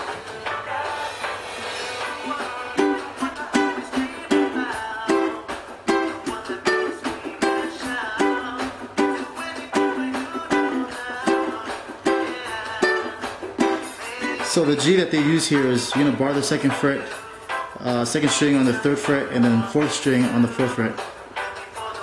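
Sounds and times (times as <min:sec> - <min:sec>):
ukulele strumming: 0:01.9 - 0:17.0.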